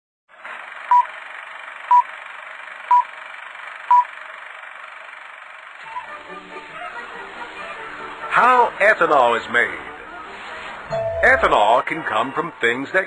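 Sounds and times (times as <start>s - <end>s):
short electronic beeps: 10.9s - 11.7s.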